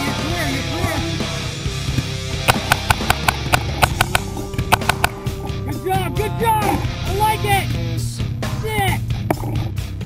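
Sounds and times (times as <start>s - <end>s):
rock music: 0.0s - 10.0s
paintball cracks: 1.9s - 5.3s.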